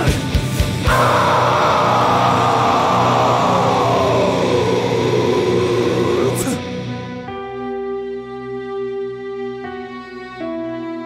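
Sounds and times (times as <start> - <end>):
low drone: 0.9 - 7.0.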